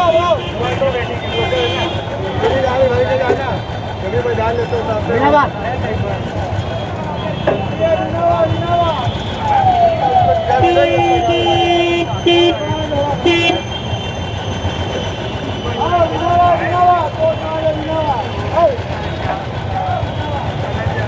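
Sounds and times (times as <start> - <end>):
people talking: 0.0 - 13.7, 15.5 - 21.0
low traffic rumble: 0.0 - 21.0.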